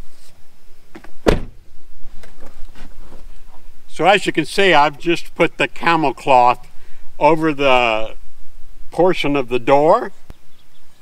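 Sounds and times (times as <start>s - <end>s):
loud thump on truck door: 1.0s - 1.6s.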